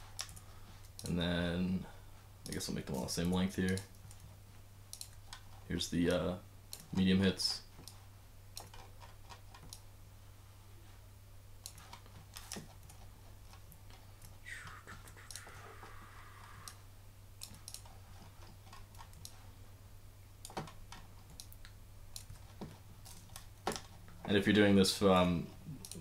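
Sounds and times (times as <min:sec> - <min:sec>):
soft hiss: 0:00.0 - 0:26.0
steady low hum: 0:00.0 - 0:26.0.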